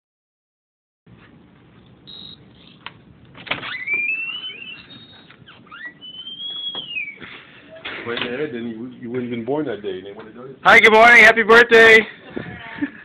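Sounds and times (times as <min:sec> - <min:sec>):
door hinges squeaking: 0:03.4 - 0:08.2.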